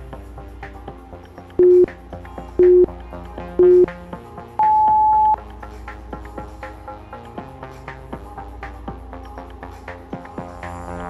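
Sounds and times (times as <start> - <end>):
music with a steady beat: 0.0 - 11.0
short timer beeps: 1.6 - 1.9, 3.6 - 3.9, 4.6 - 5.4.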